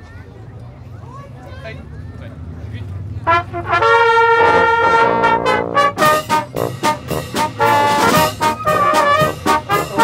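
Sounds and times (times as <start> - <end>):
marching band brass playing: 3.2 - 10.0.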